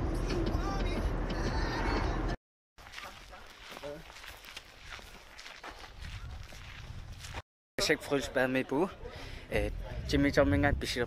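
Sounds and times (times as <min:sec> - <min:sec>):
footsteps of people walking: 0:02.8 - 0:07.4.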